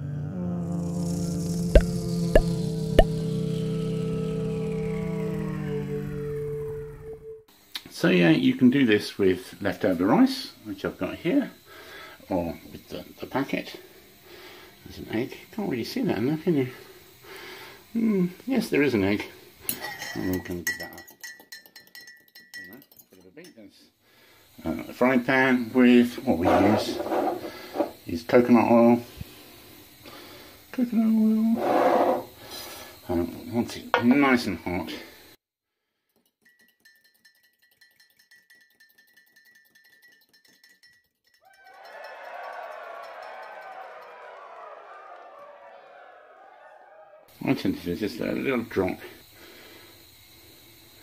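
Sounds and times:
steady high tone: 0:00.0 - 0:07.5
crowd cheering sound effect: 0:01.7 - 0:07.4, 0:41.5 - 0:47.3
fork clinking against bowl: 0:19.7 - 0:23.6, 0:36.3 - 0:41.5.

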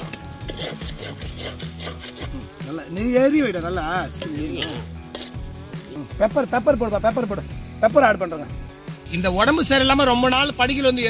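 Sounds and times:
spoon scraping metal pot: 0:00.0 - 0:02.7, 0:04.1 - 0:05.8.

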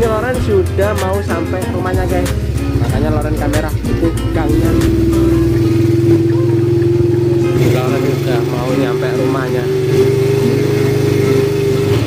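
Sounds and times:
small motorcycle engine running: 0:01.3 - 0:12.0.

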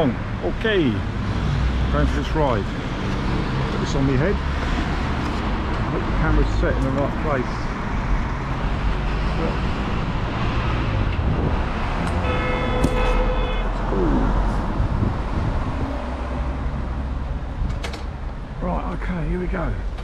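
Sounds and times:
road traffic rumbling: 0:00.0 - 0:20.0
vehicle horn: 0:12.1 - 0:13.8.

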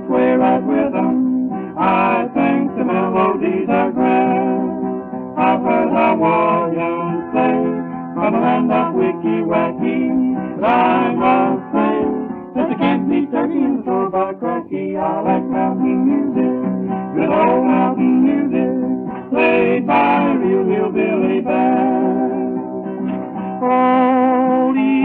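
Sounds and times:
strummed guitar: 0:00.0 - 0:25.0.

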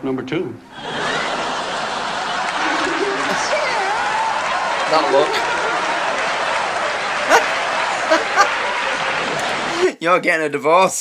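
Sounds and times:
audience laughing: 0:00.7 - 0:09.9
high-pitched yelps of laughter: 0:07.2 - 0:09.0.

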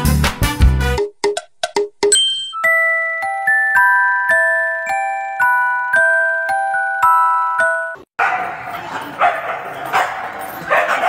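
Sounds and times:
dogs barking and yipping: 0:08.2 - 0:11.0.

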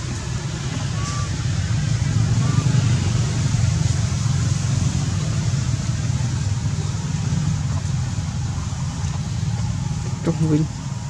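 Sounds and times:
low engine rumble with hiss: 0:00.0 - 0:11.0.

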